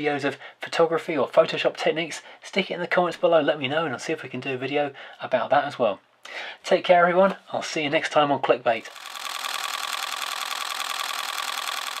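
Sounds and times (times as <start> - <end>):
small machine clattering: 8.8 - 12.0.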